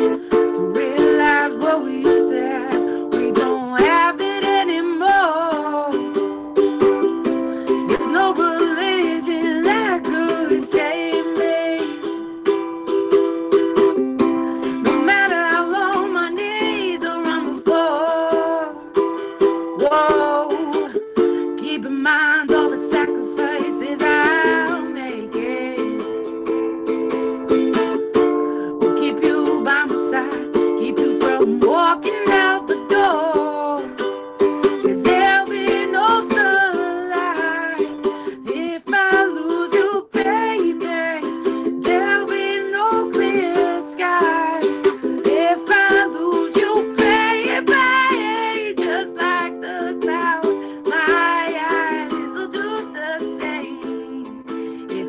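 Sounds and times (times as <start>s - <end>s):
woman singing: 0.0s - 12.7s, 13.5s - 55.0s
ukulele strumming chords: 0.0s - 55.0s.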